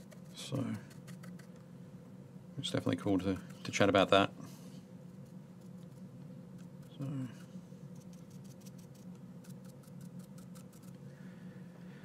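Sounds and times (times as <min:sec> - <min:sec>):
paintbrush ticking and scratching: 0:00.0 - 0:01.6, 0:03.0 - 0:03.9, 0:05.1 - 0:11.0
steady low hum: 0:00.0 - 0:12.0.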